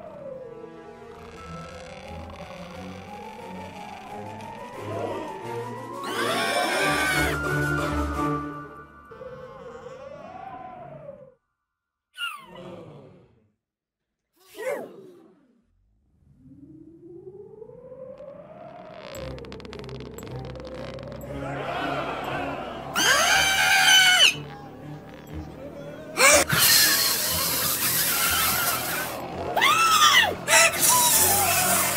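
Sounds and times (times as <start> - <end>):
background music: 0.0 - 10.8, 19.2 - 31.9
eerie wavering whistle: 3.2 - 9.5
animated characters screaming: 6.0 - 7.4, 21.4 - 24.4, 26.2 - 31.9.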